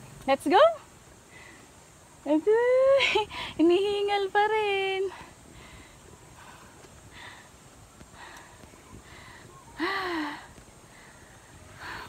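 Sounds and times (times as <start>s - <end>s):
person breathing out of breath: 5.2s - 12.0s.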